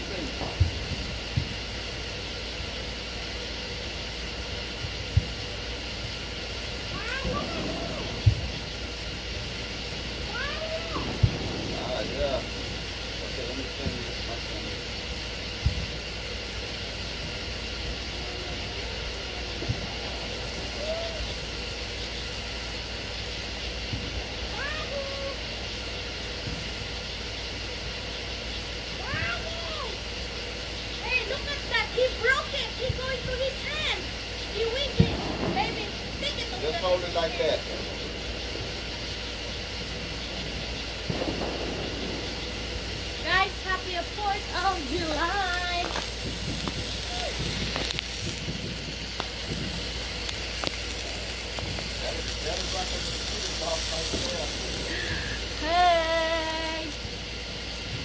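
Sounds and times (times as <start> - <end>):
distant voices calling: 0.0 - 58.0
steady high-pitched hum: 0.0 - 58.0.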